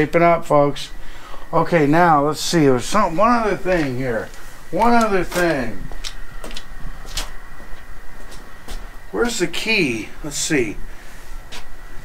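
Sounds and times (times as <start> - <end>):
steady low rumble: 0.0 - 12.0
footsteps on concrete: 3.2 - 9.0, 11.5 - 11.7.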